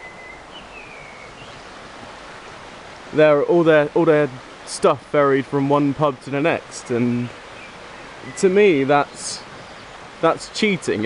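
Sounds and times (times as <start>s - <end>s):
small stream rushing: 0.0s - 11.0s.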